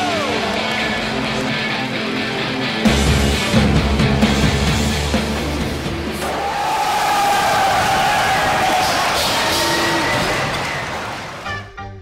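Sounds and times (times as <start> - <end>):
crowd cheering and yelling: 0.0 - 2.2, 6.0 - 11.6.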